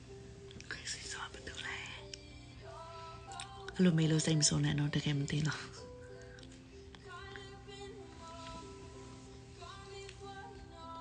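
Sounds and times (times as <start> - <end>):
soft background music: 0.0 - 11.0
woman whispering: 0.6 - 2.1.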